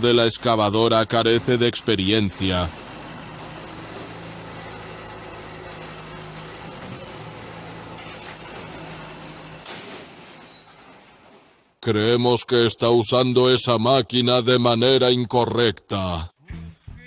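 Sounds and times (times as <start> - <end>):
bulldozer diesel engine humming: 0.0 - 11.4.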